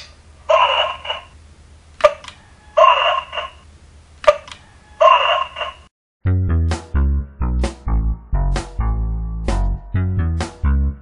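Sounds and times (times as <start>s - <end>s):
music with plucked bass line: 6.2s - 11.0s.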